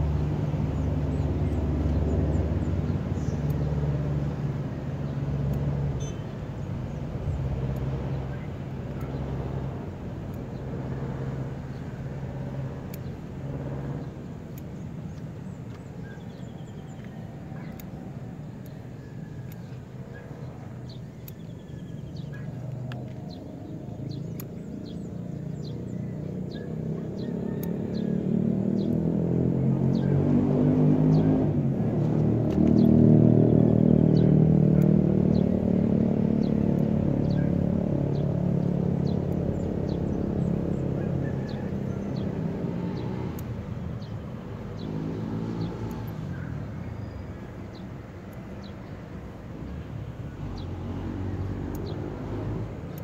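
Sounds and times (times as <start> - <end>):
passing engine droning rumble: 0.0 - 53.0.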